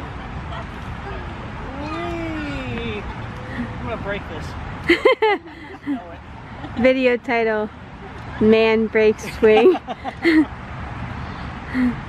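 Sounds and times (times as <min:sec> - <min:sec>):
drawn-out rising and falling call: 0:00.0 - 0:12.0.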